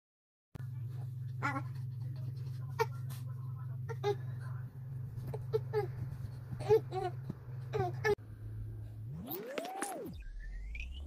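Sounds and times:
steady low hum: 0:00.6 - 0:10.8.

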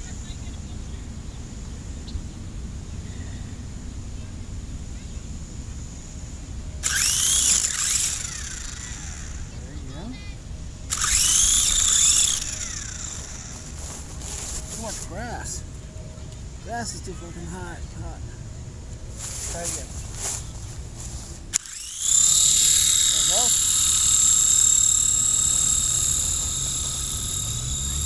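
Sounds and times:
toy helicopter rotor motors whining: 0:06.8 - 0:15.7, 0:16.6 - 0:18.2, 0:19.1 - 0:28.0.

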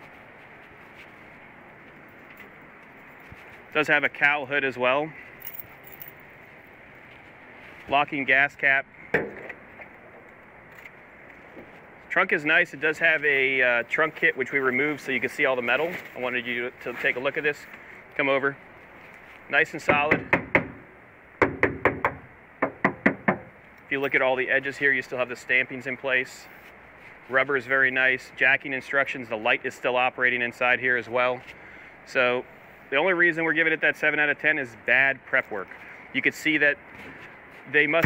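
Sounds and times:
keys jingling: 0:05.4 - 0:06.3
knocking on sheet metal: 0:19.9 - 0:20.8, 0:21.4 - 0:23.5.

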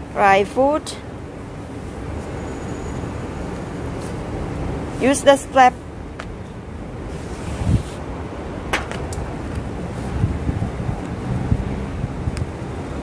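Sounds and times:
wind buffeting microphone: 0:06.8 - 0:13.0.

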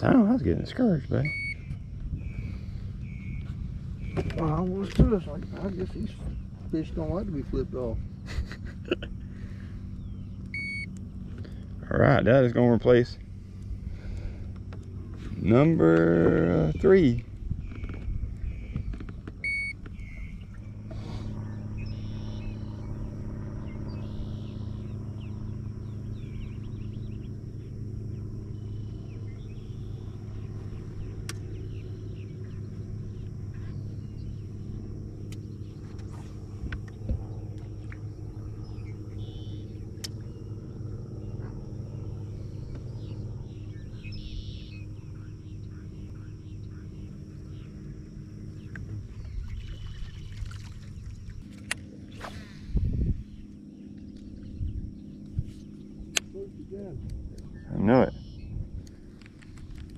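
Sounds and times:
low boat motor hum: 0:00.0 - 0:59.9
faint sharp clicks: 0:31.2 - 0:31.5, 0:40.0 - 0:40.3.

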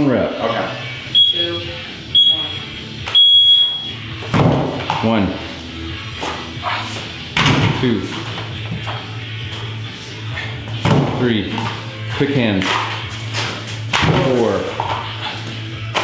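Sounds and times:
background music: 0:00.0 - 0:16.0
long high electronic beep: 0:01.1 - 0:04.0
dumbbells thudding on plate: 0:04.2 - 0:05.0, 0:10.8 - 0:11.7.

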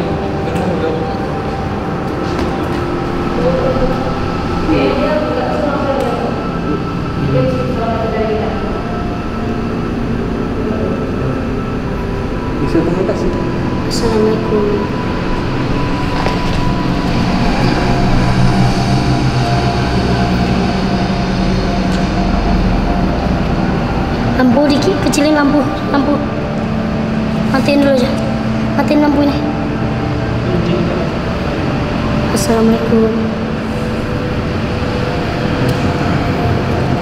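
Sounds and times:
loud droning hum: 0:00.0 - 0:37.0
low rumble: 0:00.0 - 0:37.0
murmured voices: 0:00.0 - 0:37.0.

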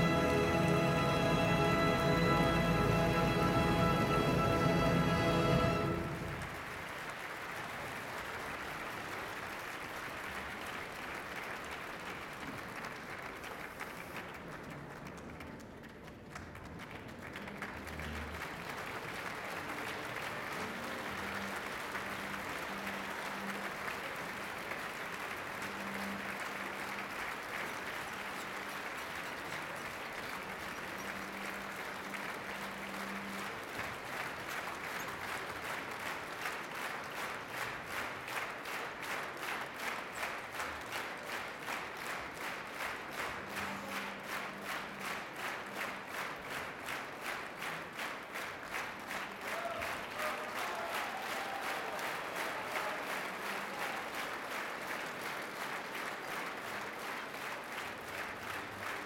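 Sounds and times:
rhythmic unison clapping: 0:00.0 - 0:07.6, 0:12.8 - 0:59.0
audience applauding: 0:00.0 - 0:59.0.

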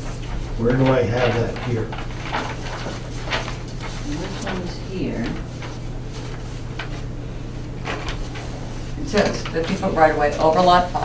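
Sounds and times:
low room hum: 0:00.0 - 0:11.0
paper maps rustling: 0:00.0 - 0:11.0.

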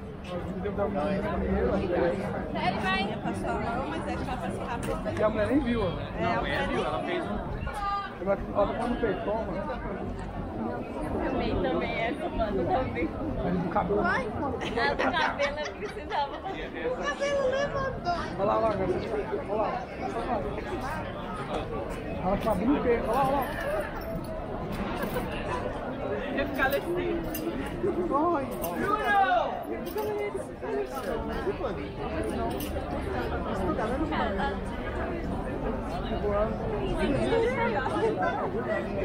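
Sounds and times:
people chatting: 0:00.0 - 0:39.0
people talking: 0:00.0 - 0:39.0.

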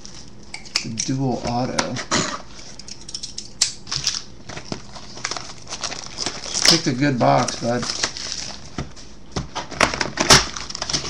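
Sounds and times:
scissors cutting plastic wrap: 0:02.6 - 0:08.8, 0:09.6 - 0:11.0
plastic wrap crinkling: 0:03.9 - 0:11.0.

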